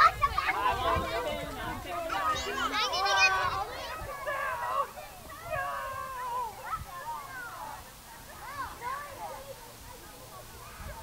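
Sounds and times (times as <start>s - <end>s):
children calling out at play: 0.0s - 11.0s.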